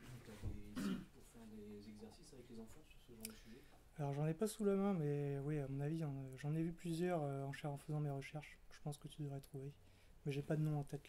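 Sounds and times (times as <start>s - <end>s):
person speaking: 0.0s - 11.0s
person clearing throat: 0.7s - 1.2s.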